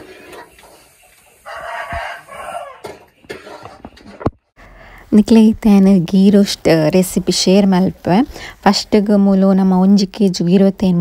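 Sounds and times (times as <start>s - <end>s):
rooster crowing: 1.4s - 3.1s.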